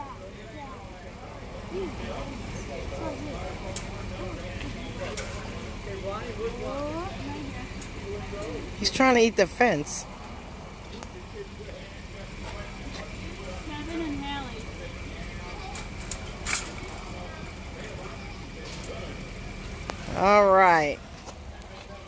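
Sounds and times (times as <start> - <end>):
faint distant voices: 0.0 - 22.0.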